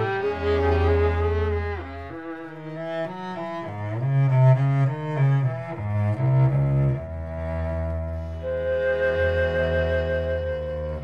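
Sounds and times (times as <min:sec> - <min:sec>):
small ensemble playing: 0:00.0 - 0:11.0.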